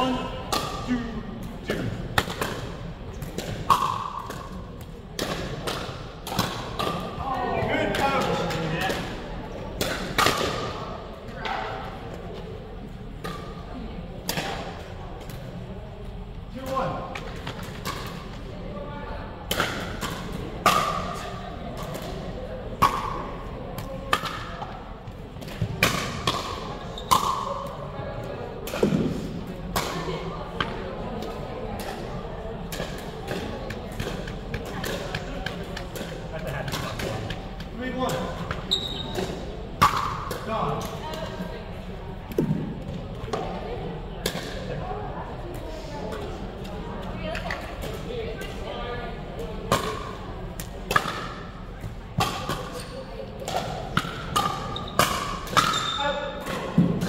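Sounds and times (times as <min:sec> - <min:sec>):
background chatter: 0:00.0 - 0:57.0.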